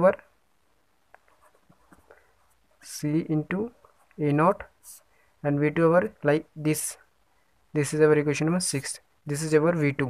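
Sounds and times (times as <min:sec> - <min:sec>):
marker pen scratching on paper: 0:01.2 - 0:02.9.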